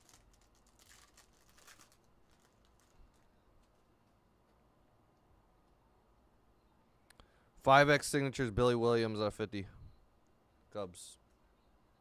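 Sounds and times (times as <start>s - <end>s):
foil wrapper tearing and crinkling: 0.0s - 3.8s.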